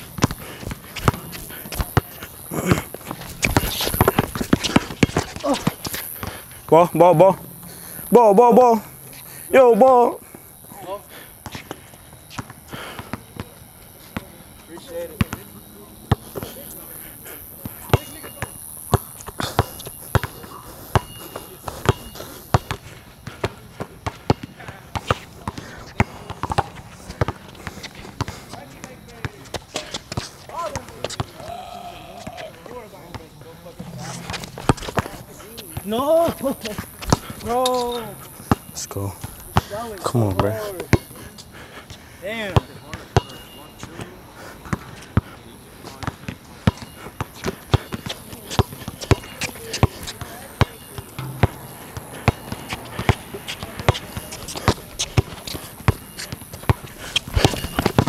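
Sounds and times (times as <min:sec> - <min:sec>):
basketball bouncing on hard court: 0:00.1 - 0:06.4, 0:07.2 - 0:08.2, 0:23.4 - 0:27.4, 0:33.8 - 0:36.0, 0:48.6 - 0:56.8
short vocal calls: 0:31.3 - 0:32.6.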